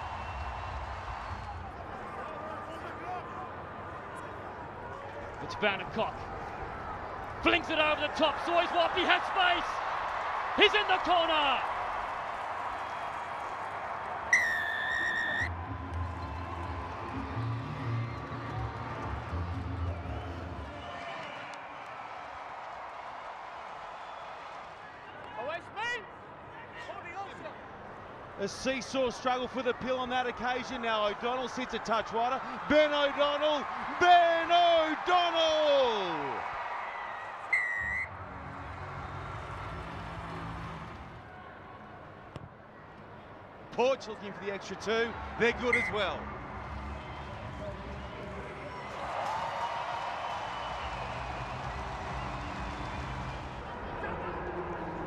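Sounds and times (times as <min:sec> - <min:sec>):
stadium crowd noise: 0:00.0 - 0:55.0
referee's whistle blast: 0:14.3 - 0:15.5, 0:37.5 - 0:38.1, 0:45.7 - 0:46.1.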